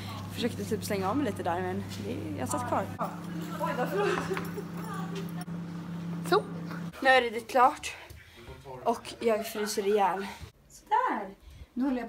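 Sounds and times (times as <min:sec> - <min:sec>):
steady low hum: 0:00.0 - 0:07.0.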